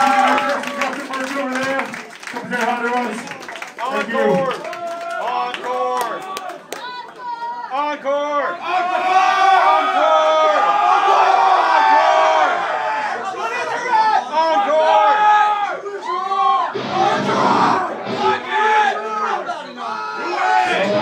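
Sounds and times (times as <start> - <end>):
crowd shouting and cheering: 0.0 - 21.0
brief noisy burst: 16.8 - 18.6.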